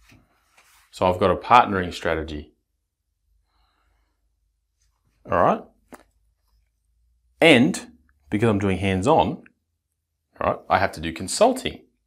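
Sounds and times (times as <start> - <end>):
faint breath: 3.3 - 4.4.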